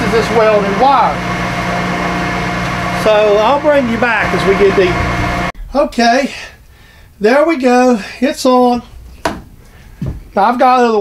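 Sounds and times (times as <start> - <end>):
milling machine humming: 0.0 - 5.6.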